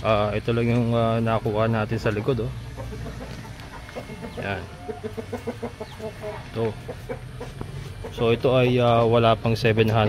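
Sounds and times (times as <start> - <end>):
chickens clucking: 0.6 - 9.2.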